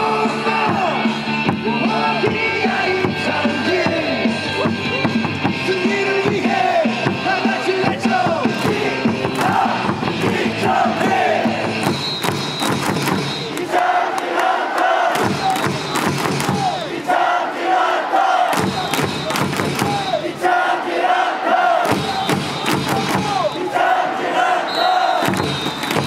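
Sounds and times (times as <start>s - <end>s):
crowd chanting: 0.0s - 4.7s, 5.6s - 26.0s
amplified cheer music: 0.0s - 26.0s
people clapping: 8.4s - 11.1s, 11.8s - 17.0s, 18.5s - 20.2s, 21.8s - 23.5s, 25.1s - 26.0s.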